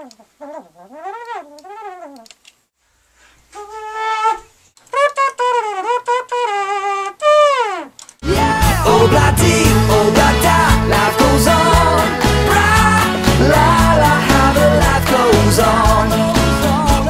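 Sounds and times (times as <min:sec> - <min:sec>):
wind instrument sliding pitch: 0:08.2 - 0:12.7.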